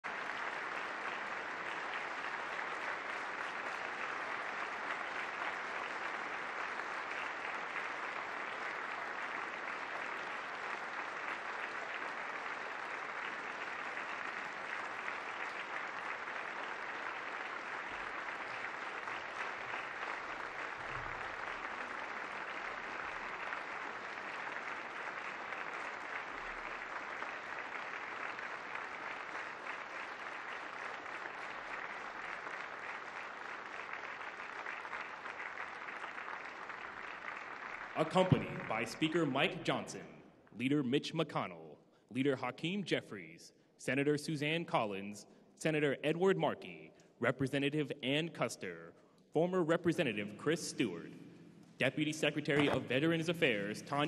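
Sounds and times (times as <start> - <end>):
large crowd applauding: 0.0 - 40.0, 52.5 - 54.0.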